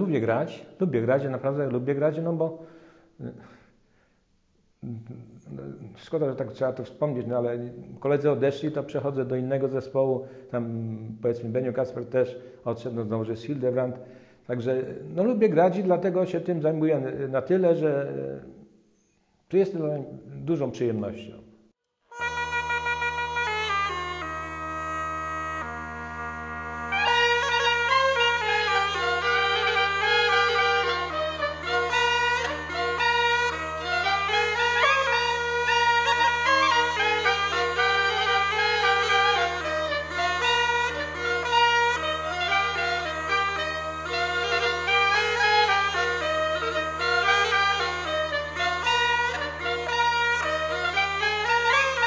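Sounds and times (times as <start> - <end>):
bagpipe drone and reedy melody: 22.1 - 52.0.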